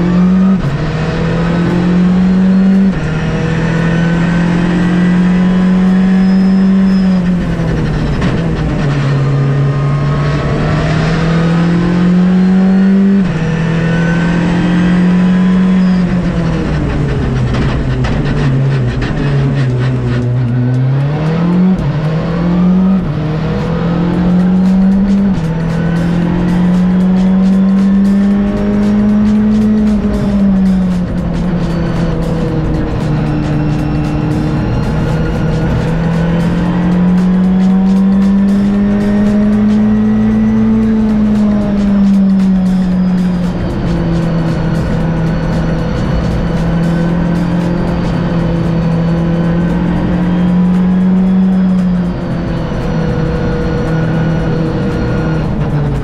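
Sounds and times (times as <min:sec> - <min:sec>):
car engine revving through gears: 0:00.0 - 0:56.0.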